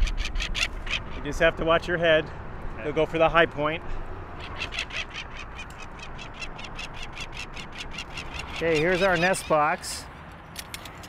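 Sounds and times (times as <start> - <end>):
low wind rumble: 0.0 - 8.8
falcon harsh cacking call: 4.4 - 9.6.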